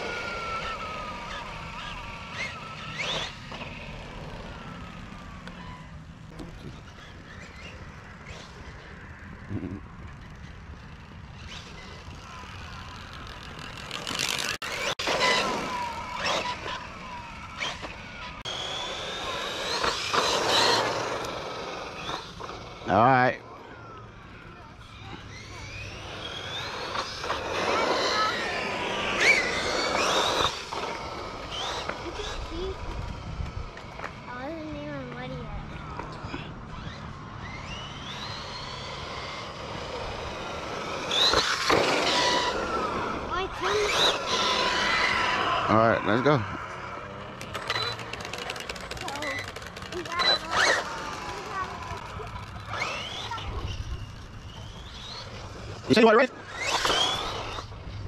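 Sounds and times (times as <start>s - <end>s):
electric motor whining: 0.0s - 58.0s.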